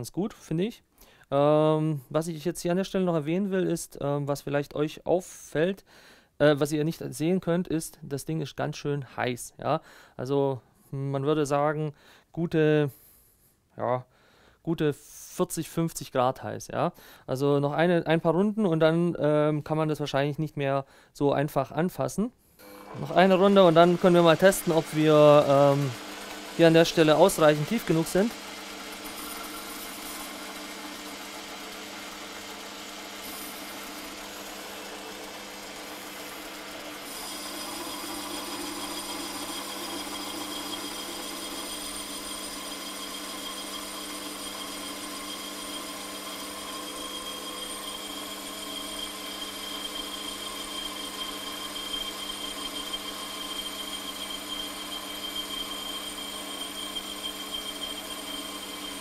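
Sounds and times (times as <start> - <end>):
lathe motor and gear hum: 22.6 - 59.0
lathe tool cutting metal: 22.6 - 59.0.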